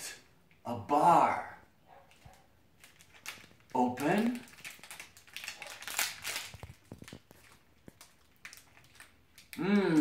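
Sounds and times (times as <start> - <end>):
wrapper crinkling: 2.1 - 10.0.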